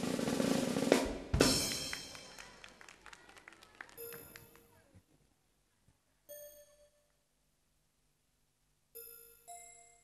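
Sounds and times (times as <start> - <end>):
drum roll: 0.0 - 2.4.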